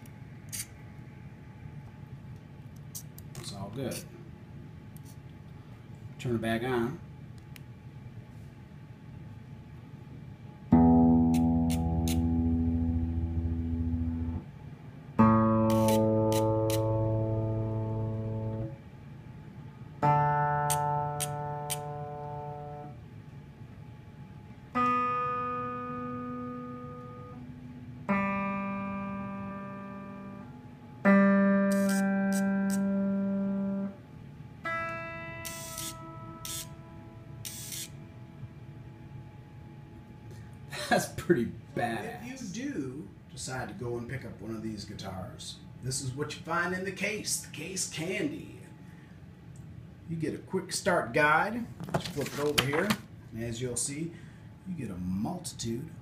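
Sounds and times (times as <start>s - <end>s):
electric guitar strings plucked: 10.7s - 14.4s, 15.2s - 18.7s, 20.0s - 22.9s, 24.8s - 30.4s, 31.0s - 33.9s
tuner motors buzzing: 10.7s - 14.5s, 15.2s - 18.8s, 20.0s - 23.0s, 24.8s - 34.0s, 34.6s - 38.2s.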